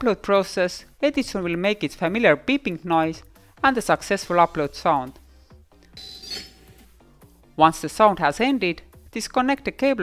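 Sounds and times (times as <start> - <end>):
faint electronic beeping: 6.0 - 6.8.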